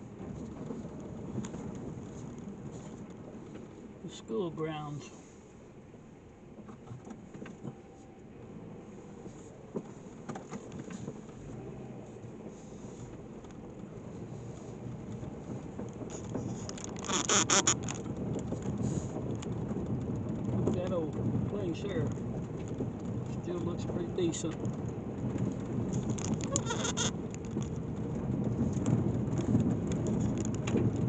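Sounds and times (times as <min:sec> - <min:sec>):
car tyres crunching gravel: 0:00.0 - 0:05.7, 0:06.4 - 0:31.0.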